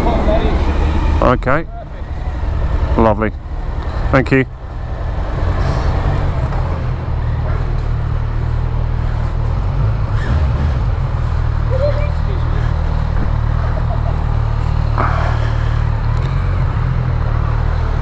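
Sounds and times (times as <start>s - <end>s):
low engine drone: 0.0s - 18.0s.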